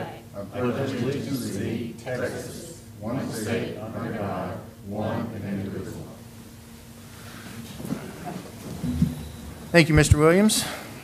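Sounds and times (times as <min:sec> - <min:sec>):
chairs shifting and rustling: 0:07.6 - 0:09.7.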